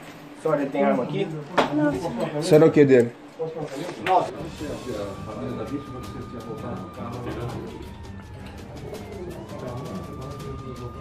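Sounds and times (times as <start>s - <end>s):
background music: 4.3s - 11.0s
siren wailing: 4.3s - 11.0s.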